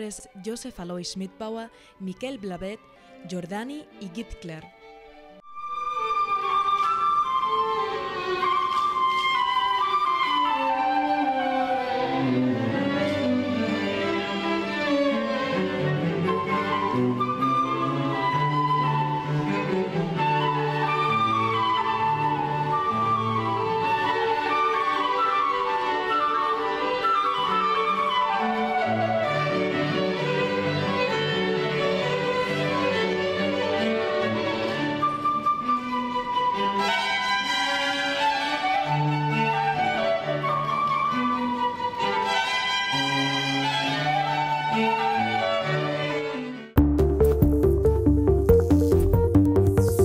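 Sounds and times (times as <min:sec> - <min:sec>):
bowed strings: 0:00.0 - 0:50.0
flute melody: 0:04.8 - 0:46.2, 0:46.8 - 0:50.0
sustained low cello line: 0:11.2 - 0:17.2.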